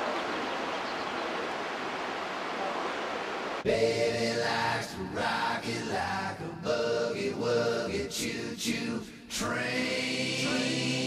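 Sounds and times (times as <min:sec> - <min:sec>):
waterfall rushing: 0:00.0 - 0:03.6.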